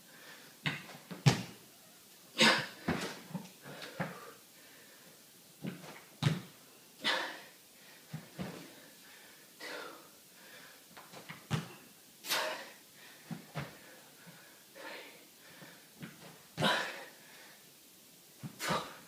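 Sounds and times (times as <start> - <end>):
man breathing hard: 3.6 - 5.2, 7.0 - 10.9, 12.3 - 16.0.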